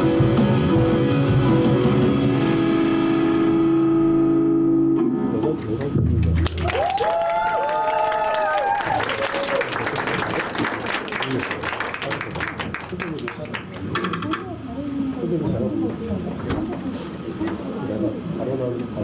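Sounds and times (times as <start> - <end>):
distorted electric guitar and keyboard chord: 0.0 - 6.4
audience applause: 5.6 - 14.0
whooping cheers: 6.6 - 9.9.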